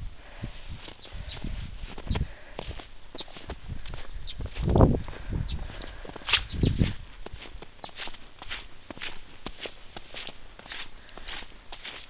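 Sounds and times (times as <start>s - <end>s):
footsteps in snow: 0.6s - 12.0s.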